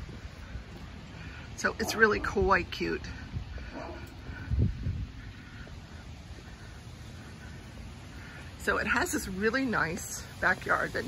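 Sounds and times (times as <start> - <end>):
steady low rumble: 0.0 - 11.0
distant bird calls: 5.0 - 9.0.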